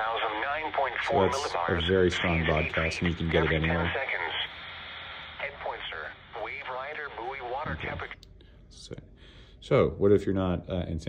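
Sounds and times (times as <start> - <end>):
automated voice on radio: 0.0 - 4.6, 5.3 - 8.2
radio hiss: 0.0 - 8.2.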